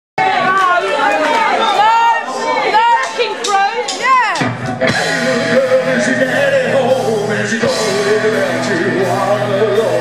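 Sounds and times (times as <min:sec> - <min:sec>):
crowd talking and calling out: 0:00.2 - 0:10.0.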